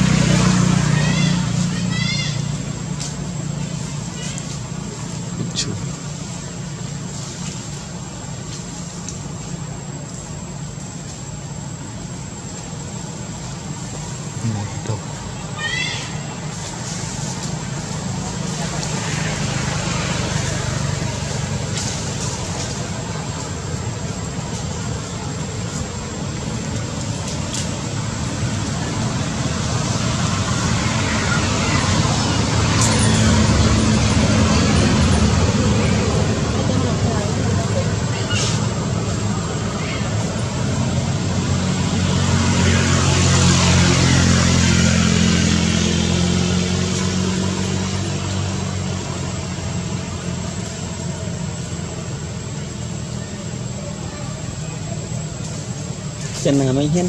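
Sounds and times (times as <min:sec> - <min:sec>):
vehicle engines and road noise: 0:00.0 - 0:57.0.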